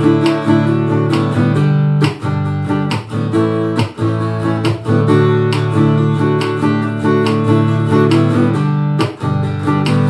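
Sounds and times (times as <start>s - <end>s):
acoustic guitar strummed chords: 0.0s - 10.0s.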